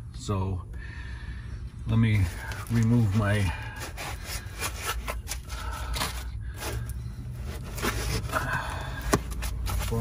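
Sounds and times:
foam packing scraping: 0:02.2 - 0:10.0.

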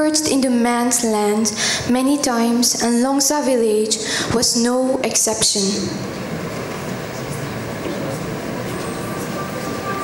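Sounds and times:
steady rushing noise: 0:05.9 - 0:10.0.

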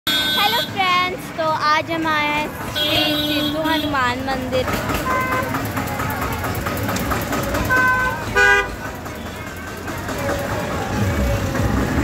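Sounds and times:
vehicle horn toot: 0:00.1 - 0:00.8, 0:05.0 - 0:05.5, 0:07.7 - 0:08.8
street noise: 0:00.1 - 0:12.0
people's voices: 0:00.3 - 0:12.0.

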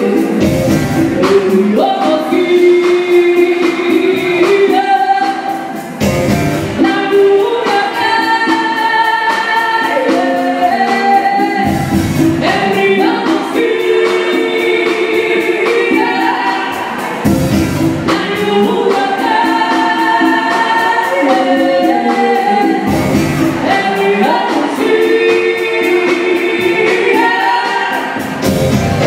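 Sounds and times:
woman singing: 0:00.0 - 0:05.9, 0:06.7 - 0:29.0
conga drums: 0:00.0 - 0:29.0
electric-acoustic guitar: 0:00.0 - 0:29.0.

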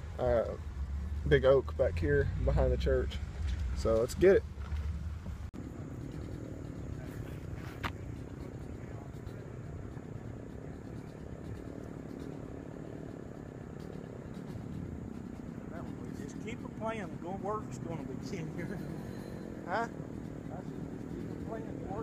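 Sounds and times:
low background rumble: 0:00.0 - 0:22.0
faint high hum: 0:05.5 - 0:22.0.

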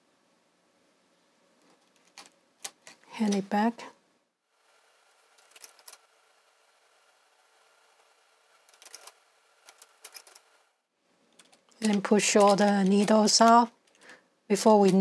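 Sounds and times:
faint steady hum: 0:00.0 - 0:15.0
knitting machine small clicks: 0:08.7 - 0:10.5.

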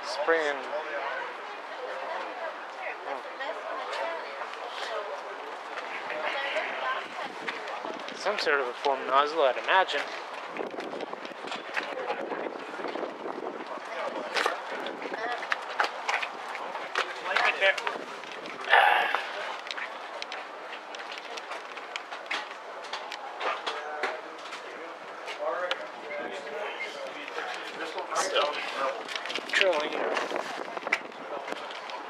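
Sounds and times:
indistinct voices talking: 0:18.6 - 0:20.2.

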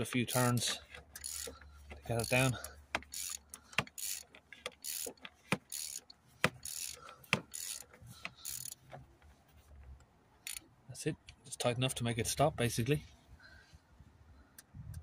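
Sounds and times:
socket ratchet clicking: 0:00.0 - 0:09.0, 0:10.4 - 0:10.6.

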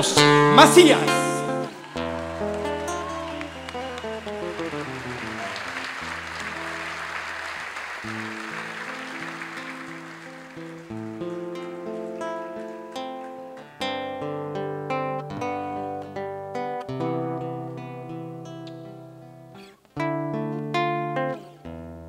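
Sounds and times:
live band playing instrumental: 0:00.2 - 0:07.4
audience applause: 0:00.6 - 0:13.5.

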